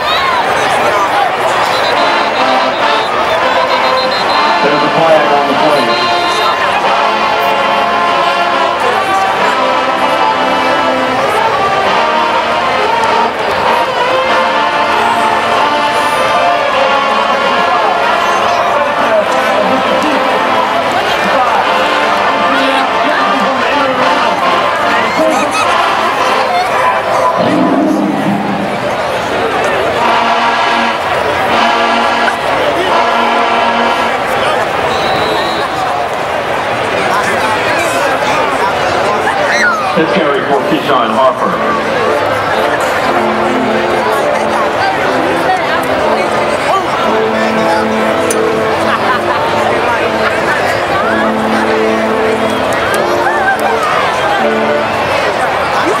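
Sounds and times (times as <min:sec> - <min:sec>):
marching band brass chords: 0:00.0 - 0:39.3, 0:39.9 - 0:56.0
crowd noise from stands: 0:00.0 - 0:56.0.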